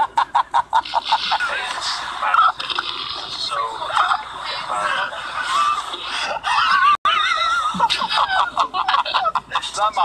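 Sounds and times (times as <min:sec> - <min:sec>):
man laughing uncontrollably: 0:00.0 - 0:01.5, 0:05.4 - 0:10.0.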